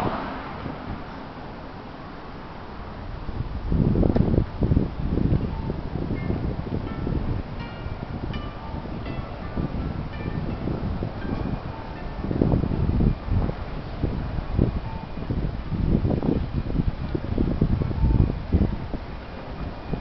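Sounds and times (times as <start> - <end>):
wind rumble on microphone: 0.0 - 20.0
bell notes chiming: 5.6 - 12.3.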